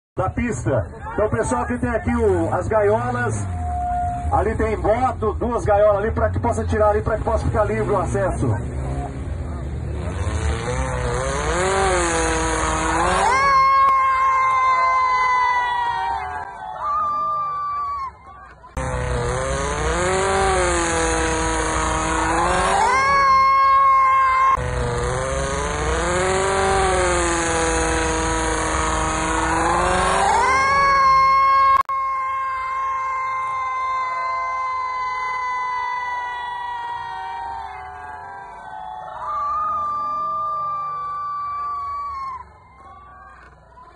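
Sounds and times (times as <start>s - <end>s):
buggy engine revving hard: 1.2s - 16.4s, 18.7s - 31.9s.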